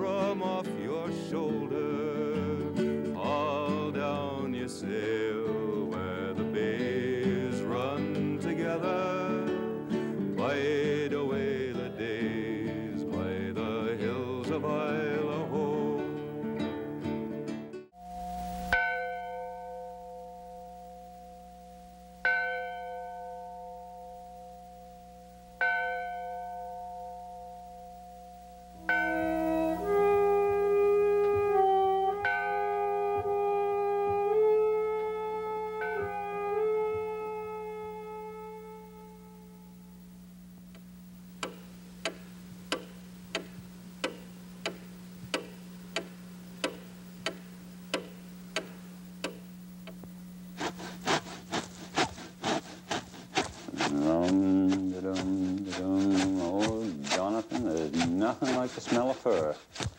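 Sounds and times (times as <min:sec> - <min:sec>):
sharp clicks: 0:41.4 - 0:50.0.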